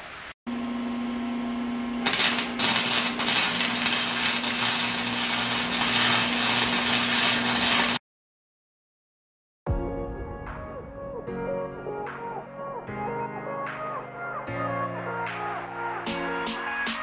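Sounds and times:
arc welding crackle: 2.0 - 8.0.

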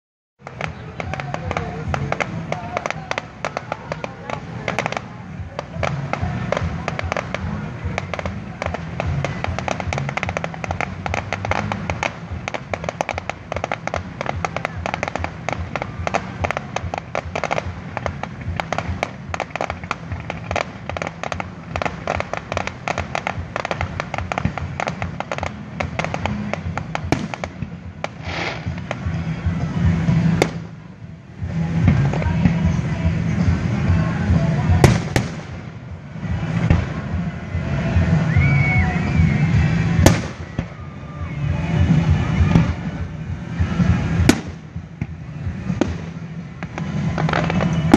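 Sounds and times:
deep firework bangs: 0.4 - 40.9, 41.6 - 47.9
fireworks crackling: 0.4 - 47.9.

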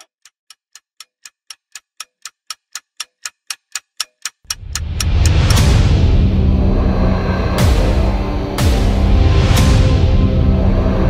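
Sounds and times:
clock ticking: 0.0 - 6.3
dark tense trailer music: 4.5 - 11.0
loud deep rumble: 4.5 - 11.0.

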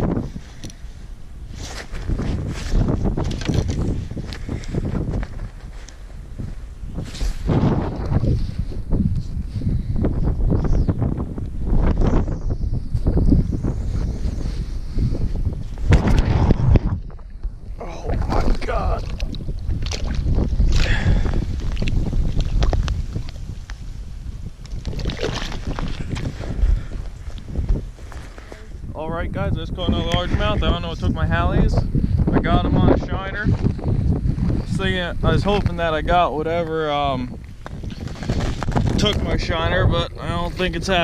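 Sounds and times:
wind buffeting microphone: 0.0 - 41.0.

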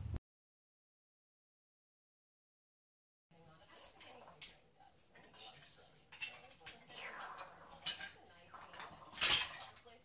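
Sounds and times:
plastic toy blocks clattering: 6.2 - 10.0.

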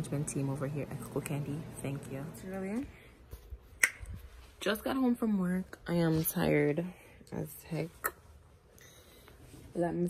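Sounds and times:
woman speaking: 0.0 - 3.0, 4.6 - 8.2, 9.7 - 10.0
finger snap: 3.8 - 4.1.

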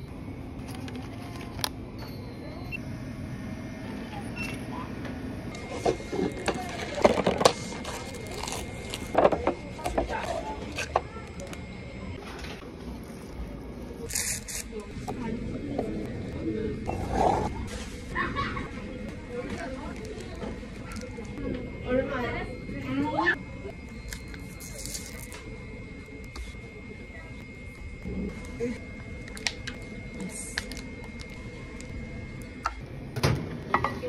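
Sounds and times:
plastic wrap crinkling: 6.4 - 9.2.

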